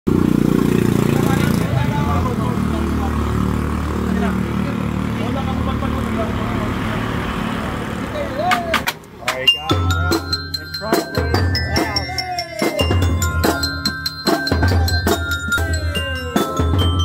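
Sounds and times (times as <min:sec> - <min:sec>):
vehicle engine running: 0:00.1 - 0:08.1
voices talking: 0:00.6 - 0:17.0.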